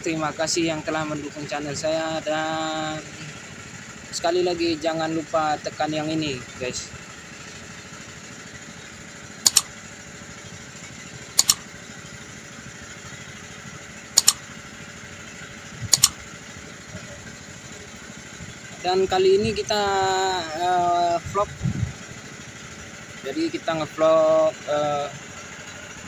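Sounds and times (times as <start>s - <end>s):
boat engine and water noise: 0.0s - 26.0s
mouse click sound effects: 9.5s - 9.7s, 11.4s - 11.6s, 14.2s - 14.4s, 15.9s - 16.2s.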